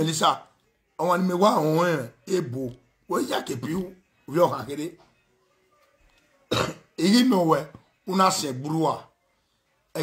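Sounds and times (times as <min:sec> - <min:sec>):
man coughing: 0:06.5 - 0:07.0.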